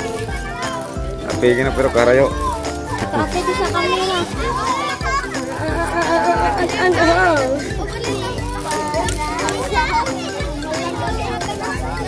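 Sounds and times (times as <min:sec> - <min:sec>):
background music with held notes: 0:00.0 - 0:12.0
children calling and playing: 0:00.0 - 0:12.0.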